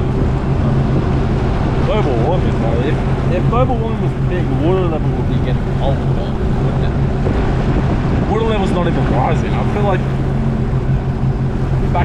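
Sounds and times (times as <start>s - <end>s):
jet ski engine running: 0.0s - 12.0s
water and wind noise: 0.0s - 12.0s
man's voice: 1.8s - 7.0s, 8.2s - 10.2s.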